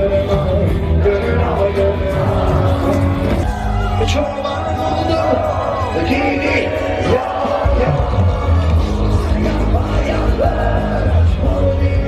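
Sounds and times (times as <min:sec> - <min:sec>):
live rock band: 0:00.0 - 0:12.0
man singing: 0:00.0 - 0:12.0.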